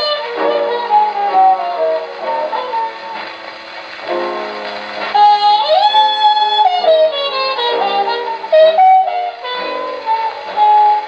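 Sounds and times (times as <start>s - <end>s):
horn playing slow melody: 0.0s - 3.3s, 4.1s - 11.0s
jazz record on gramophone: 0.0s - 11.0s.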